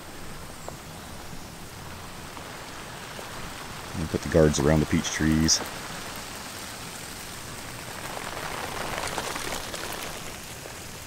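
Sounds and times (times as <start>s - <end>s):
sprinkler spray on foliage: 0.0s - 11.0s.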